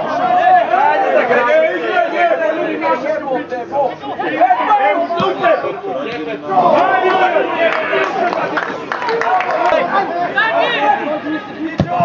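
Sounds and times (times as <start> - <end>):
men shouting: 0.0 - 3.3, 4.2 - 8.5.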